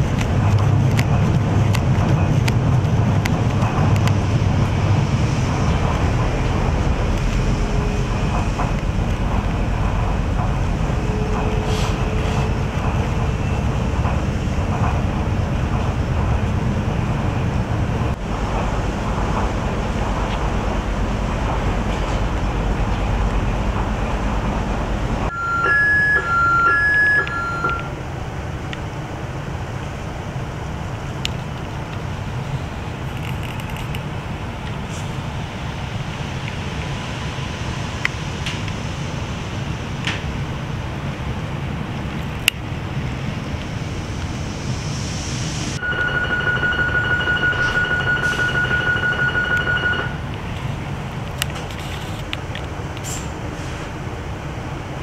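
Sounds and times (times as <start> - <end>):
train low hum: 0.0 - 55.0
steady door warning beep: 25.3 - 27.9, 45.8 - 50.2.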